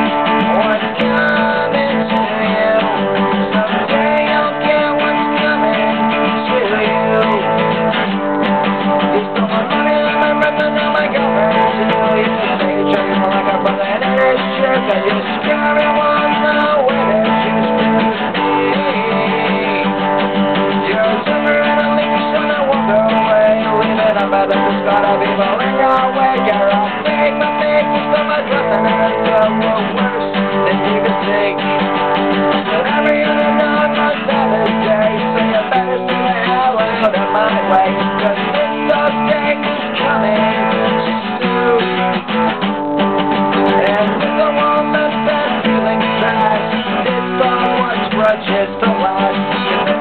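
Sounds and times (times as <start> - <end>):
acoustic guitar strumming: 0.0 - 50.0.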